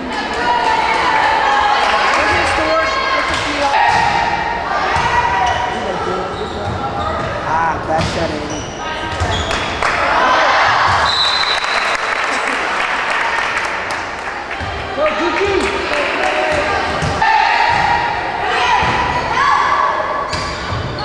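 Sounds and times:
spectators' voices and shouts: 0.0 - 11.5, 12.9 - 20.3
volleyball hits: 3.2 - 5.7, 15.6 - 19.4
sneaker squeaks on wooden floor: 5.3 - 7.4, 8.0 - 9.8.

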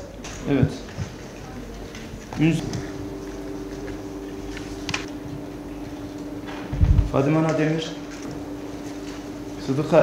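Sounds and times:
steady low two-pitch hum: 2.2 - 10.0
heavy low thump: 6.5 - 7.2.

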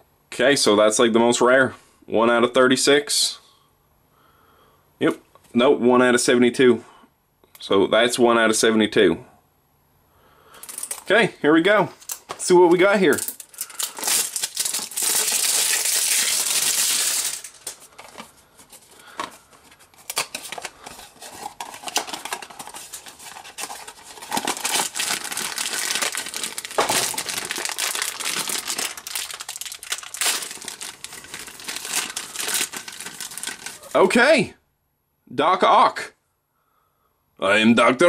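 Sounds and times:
foil bag crinkling: 12.0 - 34.1
packaging crinkling and tearing: 13.1 - 34.0.

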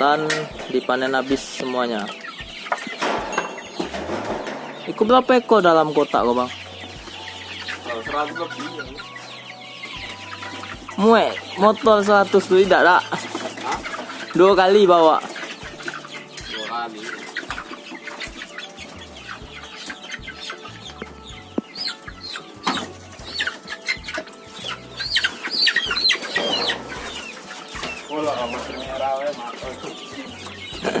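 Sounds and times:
cockerels clucking and squawking: 0.0 - 31.0.

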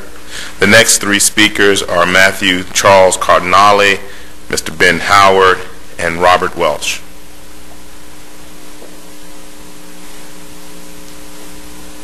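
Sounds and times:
low electrical hum: 0.0 - 12.0
steady hiss: 0.0 - 12.0.

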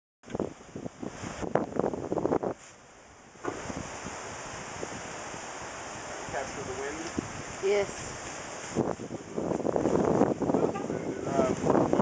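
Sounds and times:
wind buffeting microphone: 0.2 - 2.6, 3.3 - 12.0.

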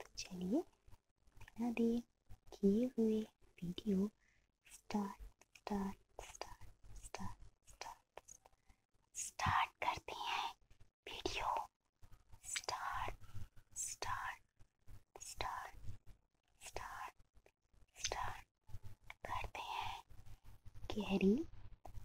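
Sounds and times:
close-up whispering: 0.0 - 0.7, 1.5 - 8.4, 9.2 - 11.7, 12.4 - 14.5, 15.2 - 16.0, 16.6 - 17.2, 18.0 - 18.5, 19.1 - 20.2, 20.8 - 21.5.

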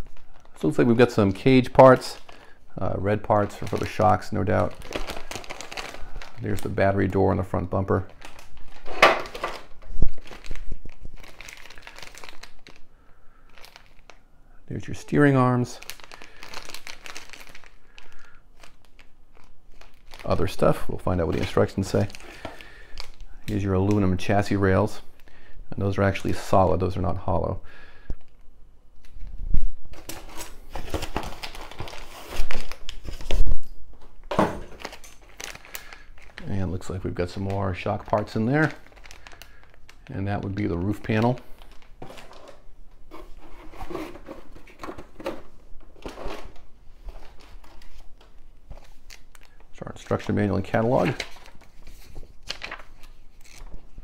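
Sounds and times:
plastic bags crinkling: 0.0 - 14.2, 14.9 - 25.3, 29.9 - 33.7, 34.4 - 54.0.

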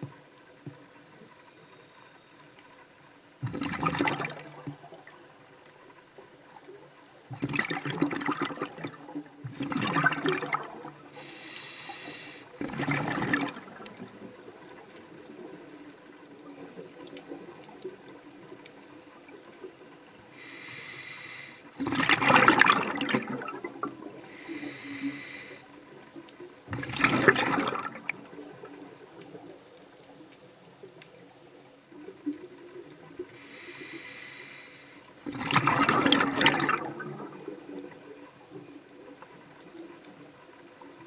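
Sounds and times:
exhaled bubbles rushing: 3.4 - 5.3, 7.3 - 11.2, 12.5 - 15.8, 21.8 - 24.3, 26.7 - 29.5, 35.2 - 38.3
diver breathing through regulator: 11.1 - 12.5, 20.3 - 21.7, 24.2 - 25.7, 33.4 - 35.1.

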